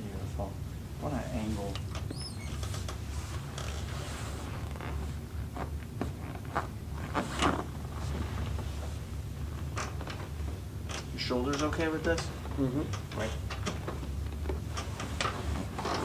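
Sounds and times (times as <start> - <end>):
low room hum: 0.0 - 16.0
padded table creaking: 2.0 - 16.0
clothing rustling: 2.5 - 10.6, 14.3 - 16.0.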